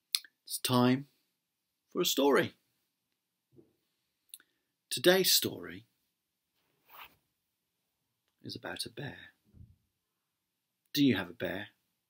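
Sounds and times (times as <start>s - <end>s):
soft rustle: 6.5s - 7.4s.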